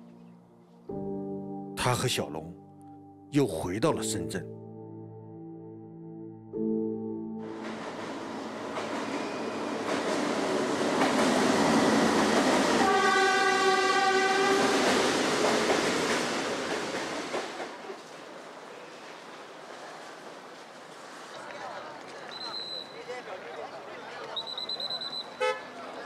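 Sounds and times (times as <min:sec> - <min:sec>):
train running noise: 0:07.5 - 0:22.1
train horn blast: 0:12.7 - 0:14.8, 0:25.4 - 0:25.7.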